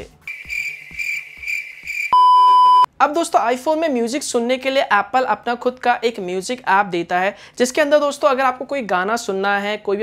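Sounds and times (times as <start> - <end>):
crickets chirping: 0.3 - 2.8.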